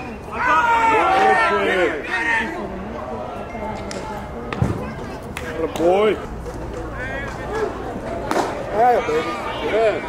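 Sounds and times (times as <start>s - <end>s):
voices calling: 0.0s - 10.0s.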